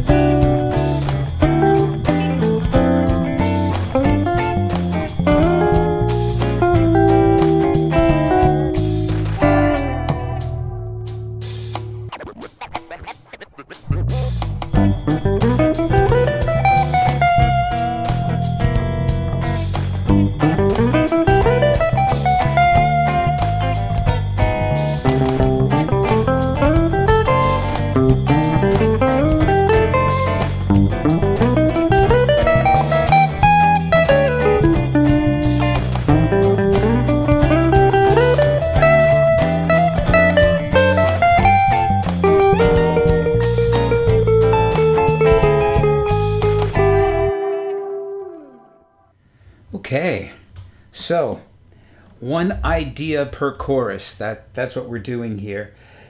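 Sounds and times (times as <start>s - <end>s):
electric guitar blues solo: 0.0s - 11.1s, 12.0s - 49.0s
bass and drum backing: 0.0s - 47.3s, 52.1s - 53.5s.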